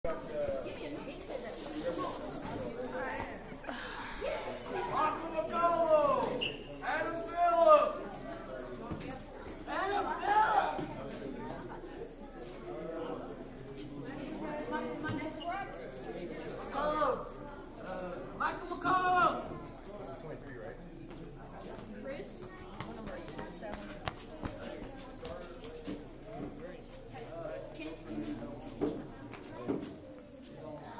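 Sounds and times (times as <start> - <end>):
indistinct chatter of voices: 0.1 - 30.9
brief hiss: 1.4 - 2.4.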